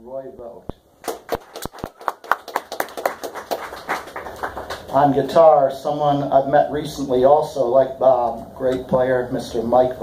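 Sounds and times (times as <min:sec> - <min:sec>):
audience applauding: 0:01.0 - 0:05.0.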